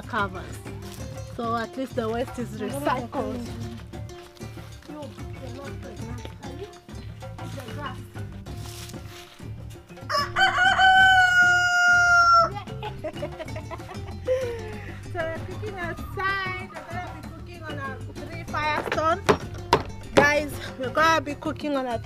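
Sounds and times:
faint background music: 0.0s - 22.0s
rooster crowing: 10.1s - 12.6s.

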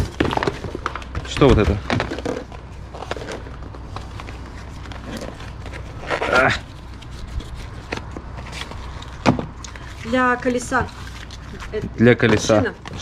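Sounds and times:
cardboard box rustling: 0.0s - 13.0s.

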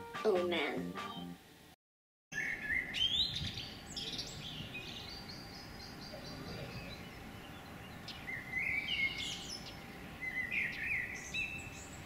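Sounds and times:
faint outdoor hiss: 0.0s - 1.8s, 2.4s - 12.0s
birds chirping: 2.3s - 12.0s.

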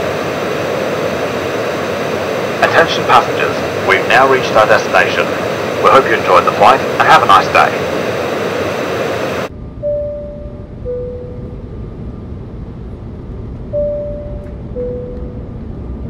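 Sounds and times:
jet airliner noise: 0.0s - 16.0s
low cabin rumble: 9.3s - 16.0s
two-tone cabin chime: 9.8s - 11.7s, 13.7s - 15.5s.

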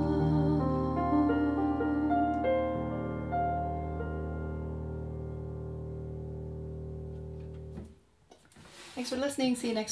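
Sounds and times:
keyboard chord held: 0.0s - 7.9s
faint rustling: 7.0s - 9.8s.

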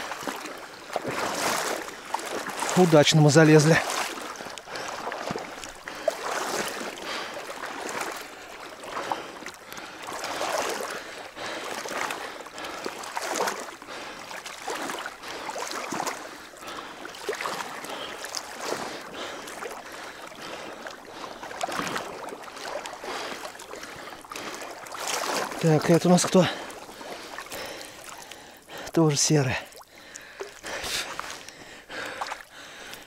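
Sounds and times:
wading through water: 0.0s - 33.0s.

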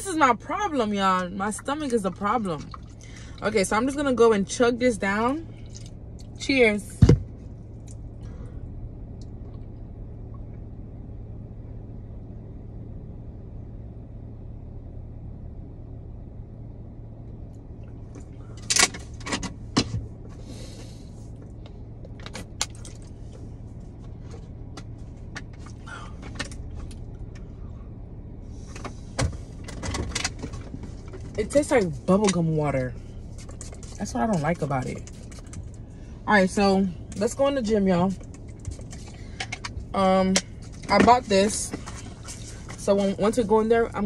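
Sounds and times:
car engine idling: 0.0s - 44.0s
sharp clicks and rustles: 38.2s - 41.0s.

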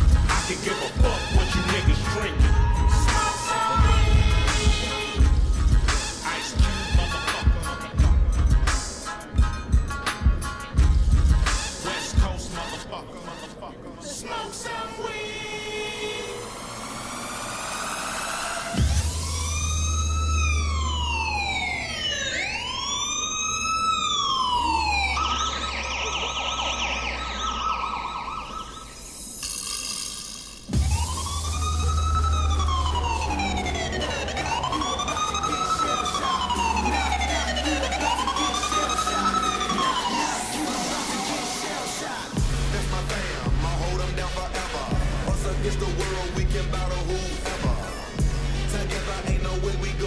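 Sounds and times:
police siren wailing: 0.0s - 8.0s, 16.4s - 29.5s, 30.7s - 50.0s
dance music with heavy bass: 0.0s - 12.8s, 16.3s - 22.3s, 24.6s - 50.0s
rising sweep: 30.5s - 42.5s.

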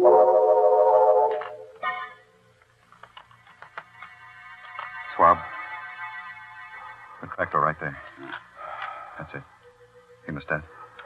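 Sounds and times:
organ chords: 0.0s - 1.8s.

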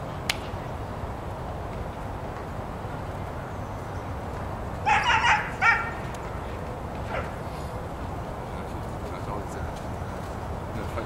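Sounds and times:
dog barking: 4.9s - 6.0s, 7.1s - 7.4s.

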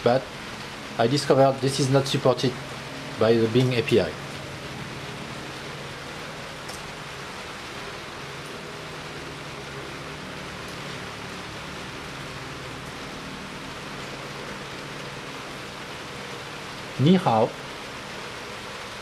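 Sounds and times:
background hiss: 0.0s - 19.0s.

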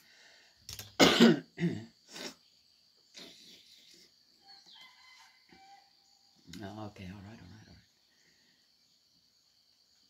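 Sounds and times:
person clearing throat: 1.0s - 2.4s
rooster crowing faintly: 4.4s - 6.5s.

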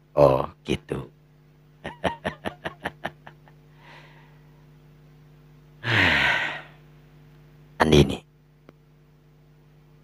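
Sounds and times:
steady low hum: 0.0s - 10.0s
breathy sigh: 3.7s - 4.5s, 5.8s - 6.8s.

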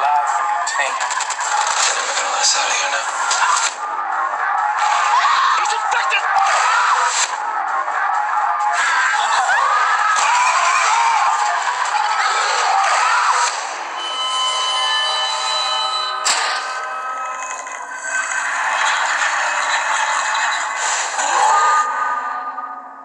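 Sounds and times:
noisy mix of effects: 0.0s - 23.0s.

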